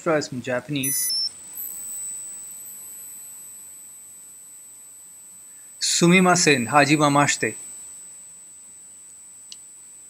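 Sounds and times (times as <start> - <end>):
high-pitched whine over hiss: 0.0 - 10.0
short high electronic beep: 0.8 - 3.2.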